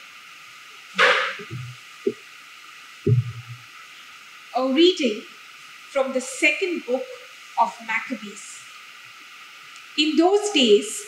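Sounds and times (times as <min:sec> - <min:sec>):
low thuds on microphone: 0:01.0 - 0:01.8, 0:03.1 - 0:03.6
microphone handling noise: 0:01.0 - 0:01.8, 0:03.1 - 0:03.6.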